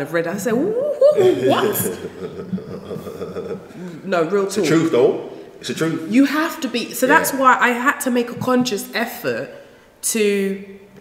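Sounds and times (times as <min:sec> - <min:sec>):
person chuckling and exclaiming: 0:00.6 - 0:04.0.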